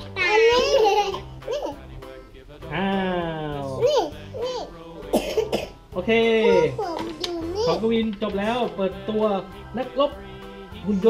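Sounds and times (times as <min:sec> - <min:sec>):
child speaking excitedly: 0:06.4 - 0:07.8.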